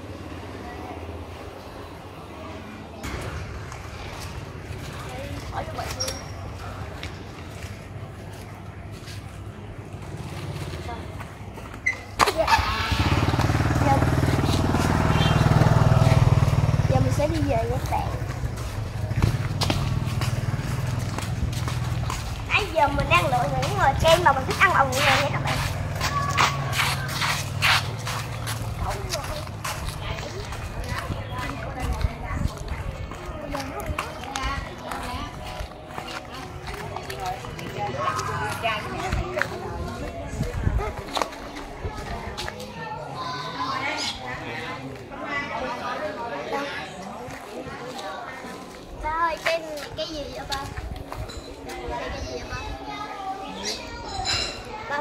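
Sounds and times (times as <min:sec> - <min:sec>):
indistinct voices talking: 0:00.0 - 0:55.0
footsteps on pavement: 0:03.0 - 0:12.3, 0:13.0 - 0:43.1, 0:46.8 - 0:52.8
motorbike engine passing by: 0:12.3 - 0:30.4.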